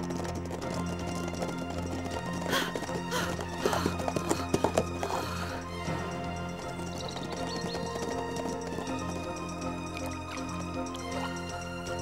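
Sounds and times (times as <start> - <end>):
background music with held notes: 0.0 - 12.0
horse hoofbeats galloping: 0.0 - 12.0
horses whinnying: 0.0 - 12.0.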